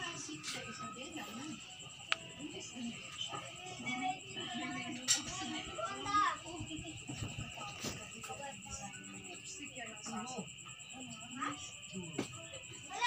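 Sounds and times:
indistinct voices talking: 0.0s - 13.0s.

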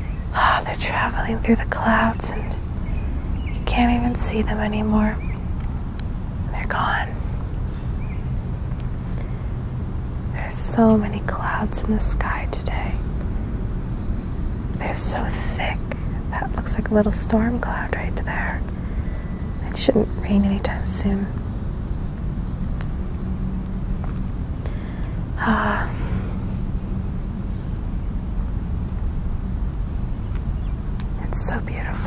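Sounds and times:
low outdoor rumble: 0.0s - 32.0s.

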